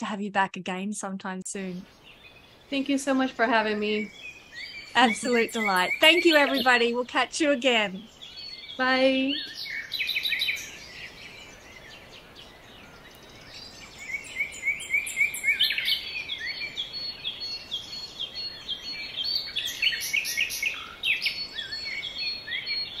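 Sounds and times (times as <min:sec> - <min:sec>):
birds chirping: 0:00.0 - 0:23.0
faint background hiss: 0:00.0 - 0:23.0.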